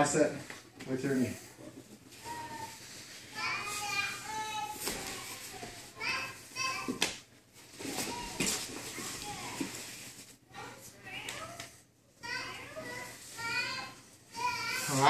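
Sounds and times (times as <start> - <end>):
children chattering and calling: 2.2 - 7.0, 12.2 - 15.0.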